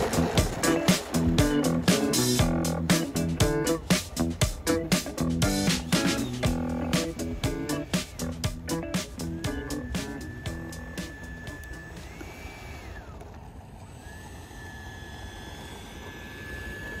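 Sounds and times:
background music with a beat: 0.0s - 12.1s
electric ducted fan whine: 0.0s - 17.0s.

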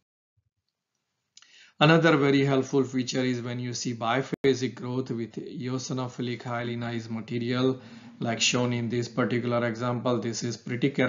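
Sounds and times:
man speaking: 1.8s - 11.0s.

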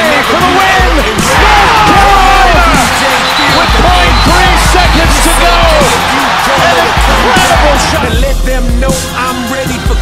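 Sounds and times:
arena crowd roaring: 0.0s - 8.2s
excited television commentary: 0.0s - 9.9s
music with pulsing bass: 0.0s - 10.0s.

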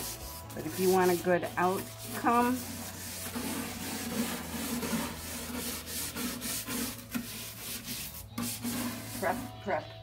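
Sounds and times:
brush scrubbing wood: 0.0s - 9.6s.

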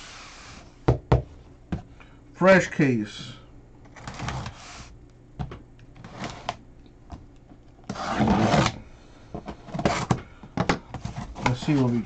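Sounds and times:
cardboard tearing: 7.9s - 8.8s.

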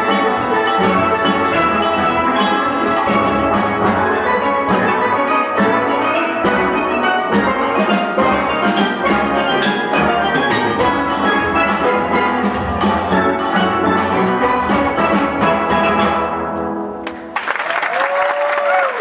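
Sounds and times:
steelband playing: 0.0s - 17.0s.

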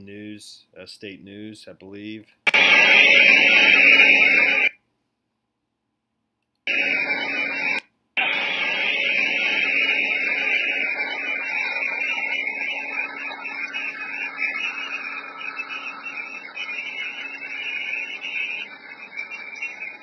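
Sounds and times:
harsh hiss: 6.7s - 20.0s.

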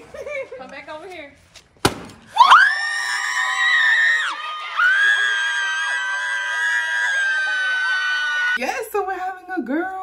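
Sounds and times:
voices shouting and cheering: 2.3s - 8.6s.

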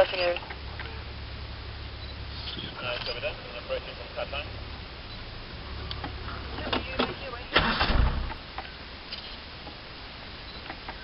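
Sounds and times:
vehicle engine humming: 0.0s - 11.0s
loud rumbling burst: 7.2s - 8.5s.

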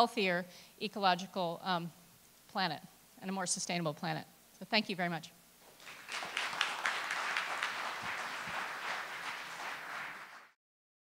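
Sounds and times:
audience applauding: 5.6s - 10.6s.

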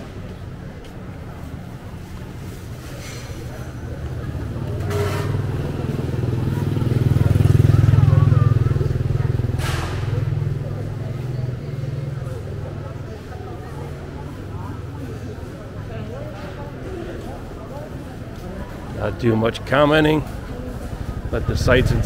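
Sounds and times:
faint voices: 0.0s - 22.0s
passing vehicle engine rumble: 0.1s - 22.0s.

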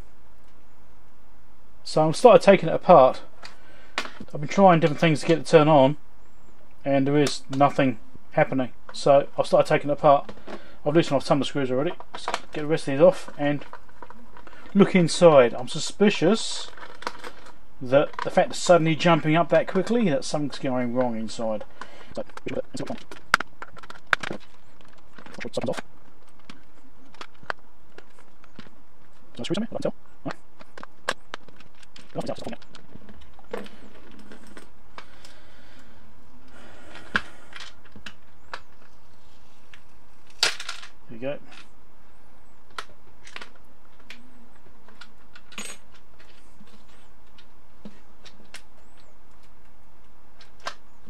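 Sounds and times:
plastic case clicks and clacks: 21.0s - 28.7s.

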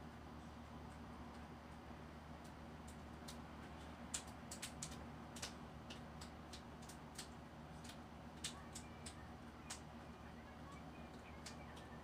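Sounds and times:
low steady hum: 0.0s - 12.0s
small clicks and ticks: 0.9s - 10.0s, 10.7s - 12.0s.

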